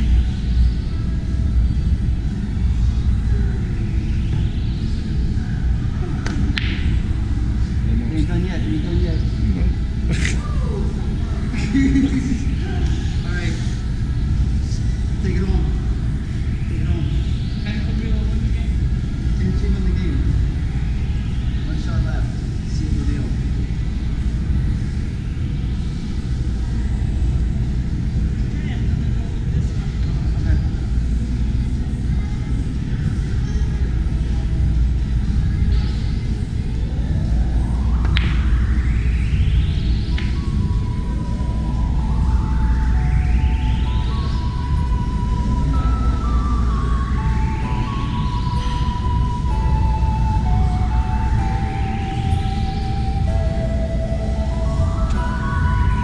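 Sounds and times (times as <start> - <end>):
rising electronic sweeps: 0.0 - 32.0, 32.8 - 56.0
indistinct voices: 0.0 - 56.0
low rumble: 0.0 - 56.0
music: 0.0 - 56.0.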